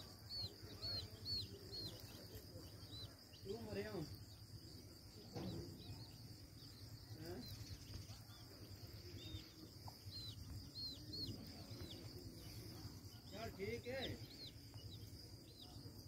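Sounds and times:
chicks peeping: 0.0s - 16.0s.

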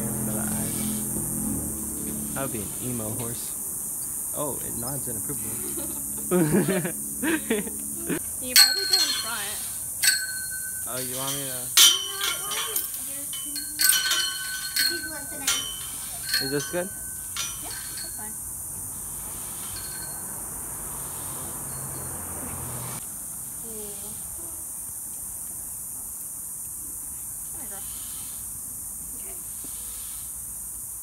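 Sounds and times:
high-pitched hiss: 0.0s - 22.1s, 22.8s - 31.0s
metal tack clinking: 10.0s - 18.2s.

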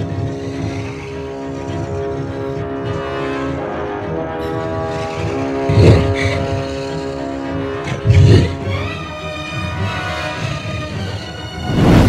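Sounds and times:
low rumbling drone: 0.0s - 9.2s.

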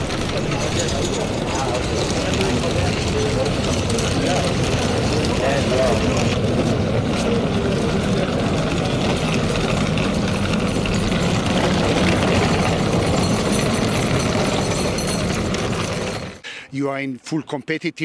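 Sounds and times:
loud background din: 0.0s - 14.7s.

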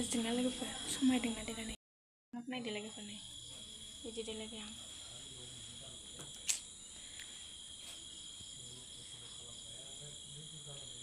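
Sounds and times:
crickets trilling: 0.0s - 1.8s, 2.4s - 11.0s
sharp click: 6.3s - 6.7s.

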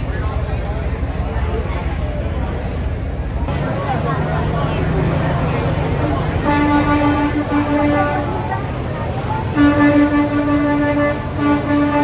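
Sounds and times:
truck engine rumble: 0.0s - 12.0s
truck horn blasts: 6.4s - 8.6s, 9.4s - 12.0s.

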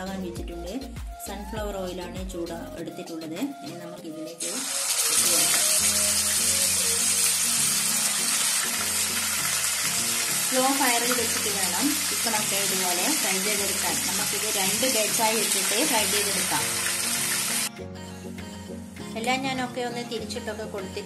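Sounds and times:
chicken sizzling in hot oil: 4.4s - 17.7s.

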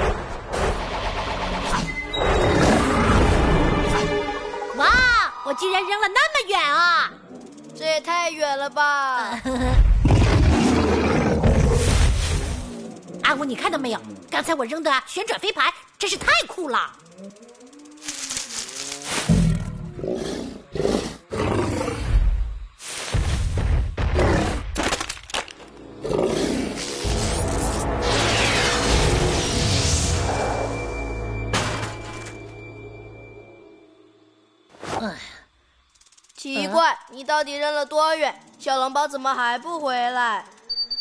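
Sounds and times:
cartoon dinosaur roaring: 9.8s - 14.3s, 19.3s - 22.4s, 25.9s - 27.1s
cartoon whoosh: 28.0s - 30.6s.

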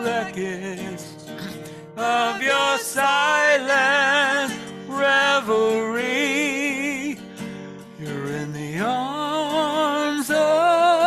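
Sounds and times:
acoustic guitar: 0.0s - 11.0s
woman singing with vibrato: 2.0s - 3.3s.

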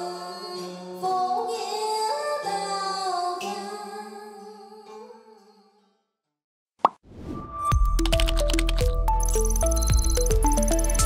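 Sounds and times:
woman singing with accompaniment: 0.0s - 5.8s.

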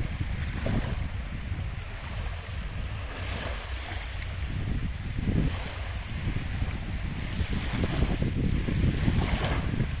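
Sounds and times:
small waves washing onto sand: 0.0s - 10.0s
wind buffeting microphone: 0.0s - 10.0s.

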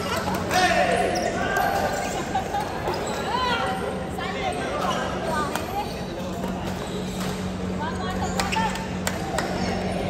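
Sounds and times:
sports shoes squeaking on court: 1.1s - 3.7s, 4.8s - 7.5s.

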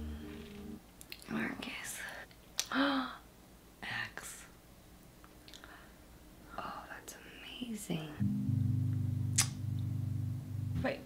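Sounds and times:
woman whispering: 1.2s - 3.2s, 3.8s - 4.5s, 6.5s - 8.2s.

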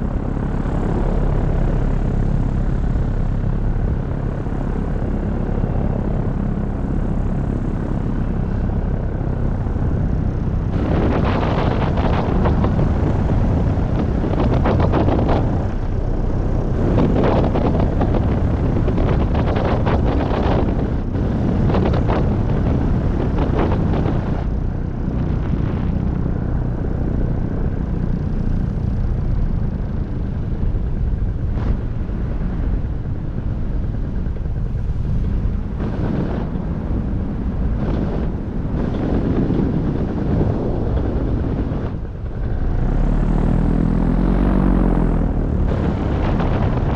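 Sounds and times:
paramotor engine and propeller: 0.0s - 46.9s
wind buffeting microphone: 0.0s - 46.9s.

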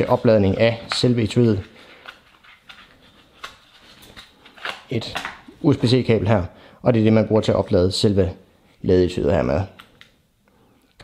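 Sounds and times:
packaging rustling: 0.0s - 5.5s.

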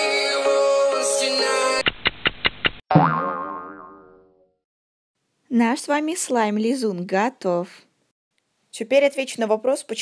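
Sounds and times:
cartoon boing twang: 2.9s - 4.6s.

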